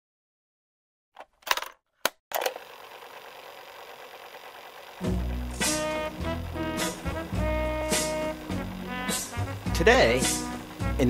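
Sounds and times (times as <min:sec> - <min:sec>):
steady hiss: 0:04.9 - 0:11.0.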